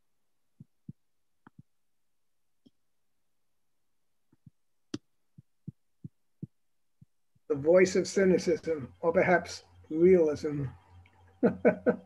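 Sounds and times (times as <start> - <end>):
computer keys tapping: 0.6 - 1.8.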